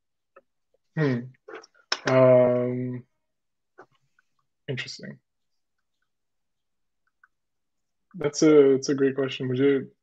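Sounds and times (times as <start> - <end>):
person speaking: 0.9 - 3.1.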